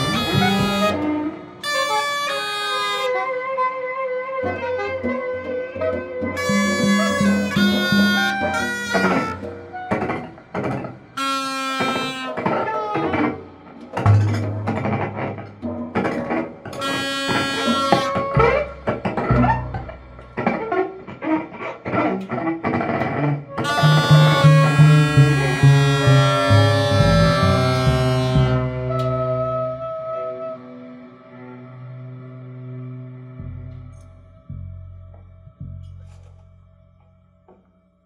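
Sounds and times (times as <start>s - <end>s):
electric upright bass: 0.0s - 1.0s, 6.4s - 9.5s, 14.0s - 16.0s, 16.9s - 20.9s, 23.6s - 30.2s, 31.2s - 37.0s
bowed cello: 0.0s - 2.7s, 4.4s - 22.4s, 23.0s - 36.6s
reedy held wind tones: 0.0s - 3.3s, 6.4s - 15.3s, 16.6s - 20.6s, 23.6s - 36.0s.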